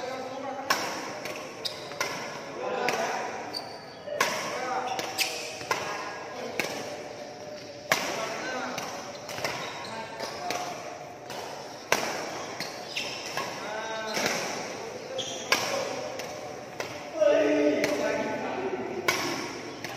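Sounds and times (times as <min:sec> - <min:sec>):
rackets striking shuttlecock: 0:07.8 - 0:17.1, 0:19.0 - 0:19.9.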